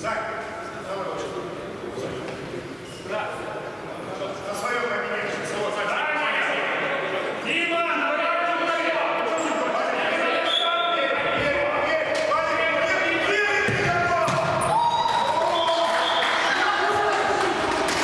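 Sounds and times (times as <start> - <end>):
ball kicked and bouncing indoors: 13.6 - 14.8.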